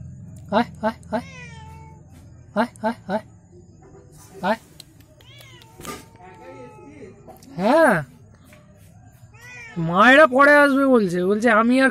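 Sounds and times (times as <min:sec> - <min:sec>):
cat mewing quietly: 0:04.5 - 0:07.4.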